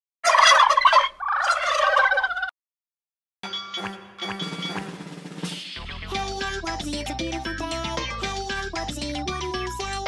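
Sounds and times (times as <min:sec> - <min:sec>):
turkey gobbling: 0:00.2 - 0:02.5.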